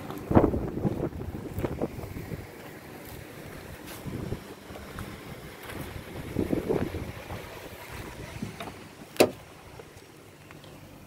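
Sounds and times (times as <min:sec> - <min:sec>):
wind buffeting microphone: 0:00.0 - 0:09.8
car door opening clack: 0:08.6 - 0:09.4.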